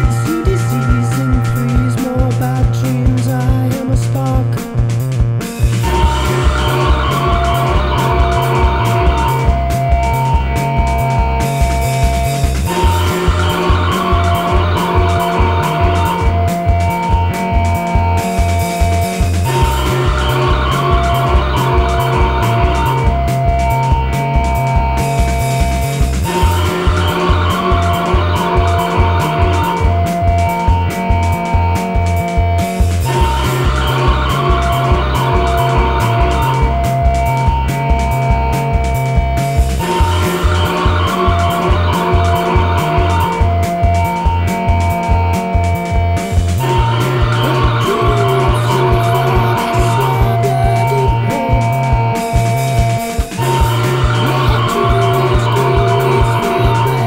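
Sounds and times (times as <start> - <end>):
sustained keyboard and synth tones: 0.0 - 4.0, 5.6 - 57.0
guitar: 0.0 - 57.0
pulsing bass line: 0.0 - 57.0
steady drum beat: 0.0 - 57.0
noisy synth swell: 5.8 - 24.0, 46.6 - 57.0.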